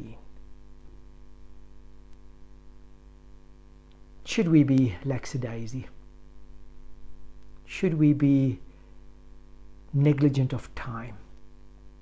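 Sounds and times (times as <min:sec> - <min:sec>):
man speaking: 0:00.0 - 0:00.3, 0:04.2 - 0:06.0, 0:07.7 - 0:08.7, 0:09.9 - 0:11.3
low electrical hum: 0:00.0 - 0:12.0.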